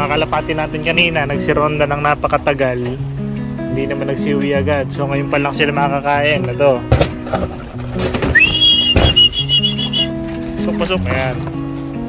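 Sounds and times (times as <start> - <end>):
rising high whistle call: 8.3 - 10.2.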